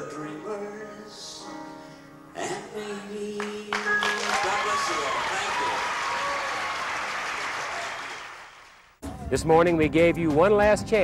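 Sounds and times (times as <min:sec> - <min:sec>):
audience applauding: 0:03.4 - 0:09.0.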